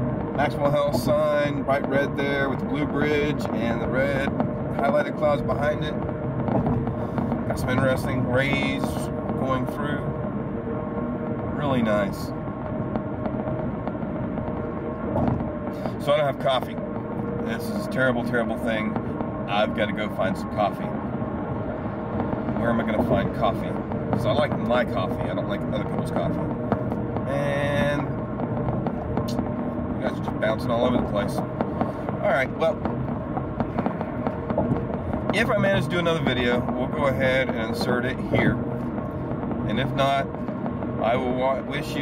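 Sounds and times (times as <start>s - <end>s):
car driving at highway speed: 0.0s - 42.0s
small knocks and rattles: 12.6s - 16.1s.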